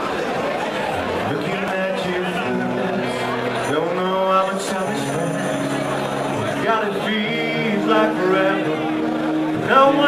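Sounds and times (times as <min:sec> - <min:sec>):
live rock band: 0:01.2 - 0:10.0.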